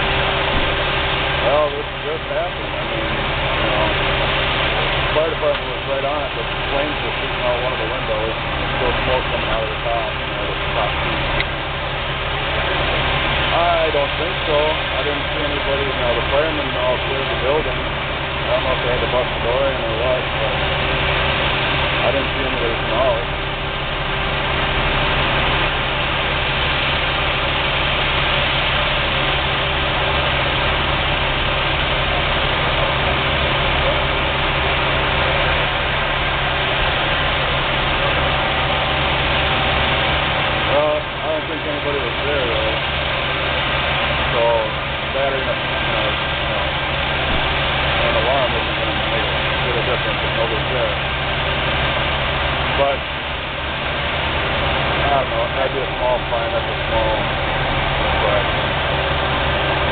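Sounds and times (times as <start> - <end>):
fire engine drone: 0.0 - 59.9
voices: 0.1 - 59.9.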